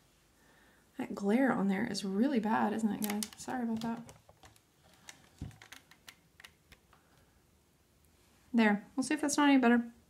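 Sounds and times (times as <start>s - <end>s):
tools clicking on a desk: 3.0s - 6.8s.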